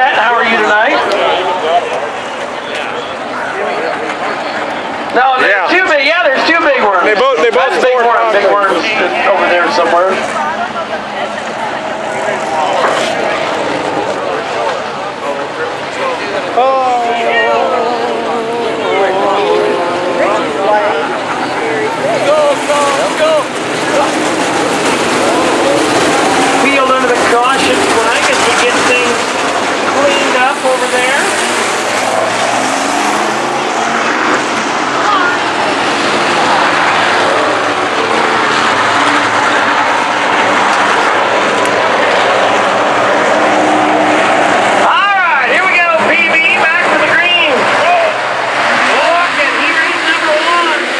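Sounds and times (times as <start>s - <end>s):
race car engines: 0.0s - 50.9s.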